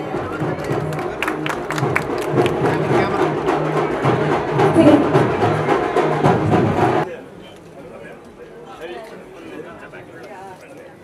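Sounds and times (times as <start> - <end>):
music playing: 0.0 - 7.0
crowd chatter: 0.0 - 11.0.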